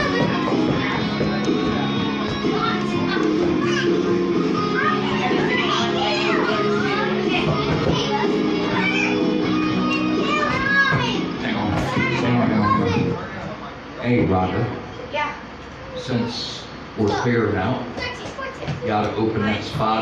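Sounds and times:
karaoke backing track: 0:00.0 - 0:13.5
party guests chattering: 0:00.0 - 0:20.0.

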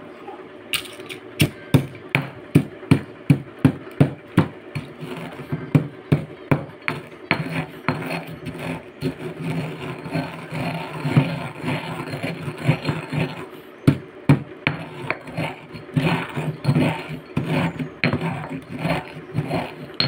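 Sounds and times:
pestle grinding eggshells: 0:00.8 - 0:20.0
pestle knocking in mortar: 0:01.4 - 0:20.0.

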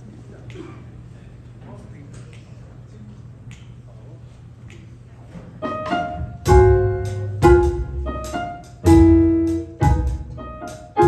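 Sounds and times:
low stage hum: 0:00.0 - 0:11.0
finger snaps: 0:03.4 - 0:03.9, 0:04.6 - 0:05.0.

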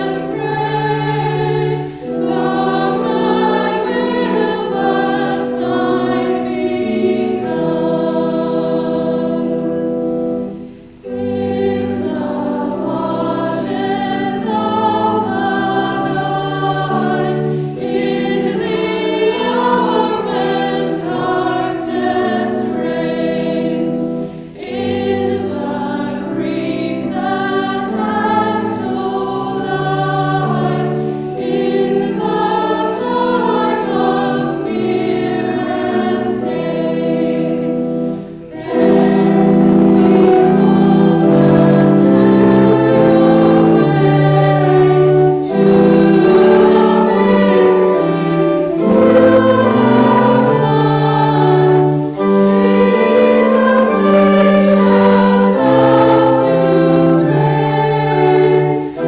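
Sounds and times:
church choir singing: 0:00.0 - 0:59.0.

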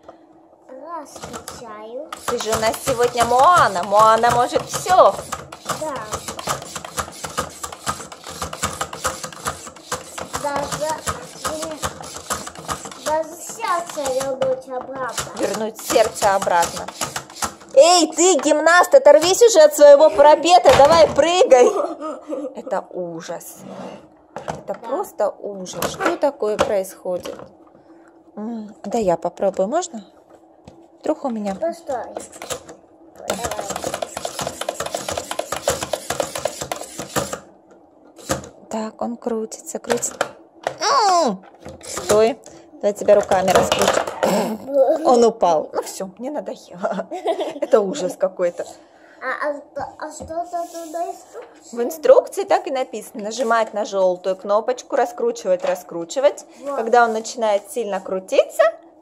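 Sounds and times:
toy plastic clicking and rattling: 0:02.2 - 0:17.7.

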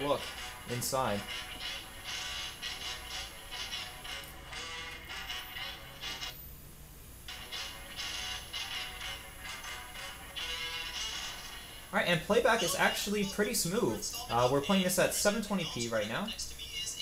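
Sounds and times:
intro music through small speaker: 0:00.0 - 0:17.0.

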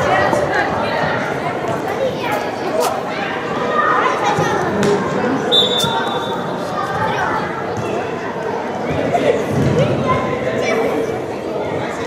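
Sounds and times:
high whistle: 0:05.5 - 0:06.4.

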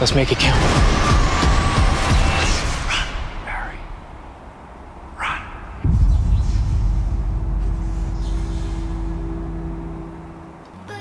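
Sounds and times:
loud rushing noise: 0:00.0 - 0:10.6.

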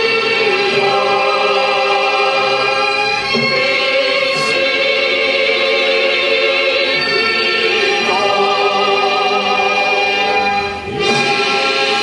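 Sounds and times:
crowd singing in unison: 0:00.0 - 0:12.0.

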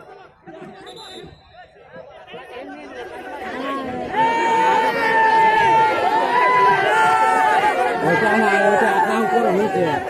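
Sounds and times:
spectators chattering: 0:00.0 - 0:10.0.

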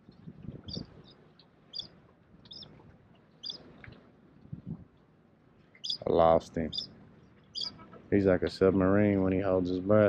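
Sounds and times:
small bird chirping: 0:00.6 - 0:02.7, 0:03.4 - 0:03.7, 0:05.7 - 0:06.1, 0:06.7 - 0:08.0.

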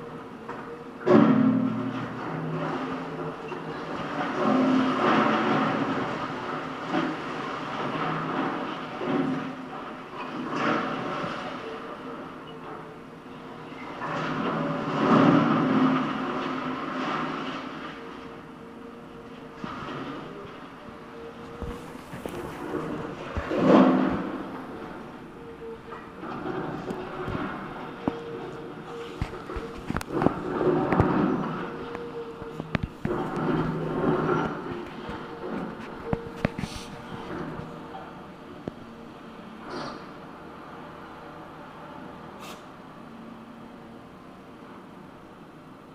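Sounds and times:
rubble and scrap metal clatter: 0:00.0 - 0:39.0
excavator diesel engine: 0:00.0 - 0:45.9.

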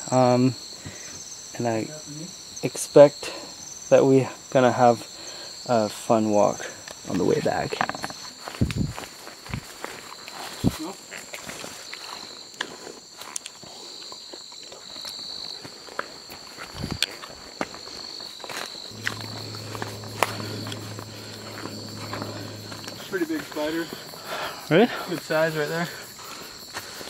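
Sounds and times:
night insect chorus: 0:00.0 - 0:27.0
low steady hum: 0:18.9 - 0:24.4.

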